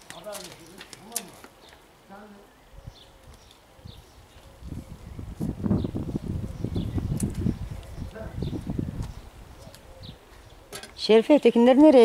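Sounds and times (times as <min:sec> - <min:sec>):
high bird chirp: 0:02.5 - 0:11.2.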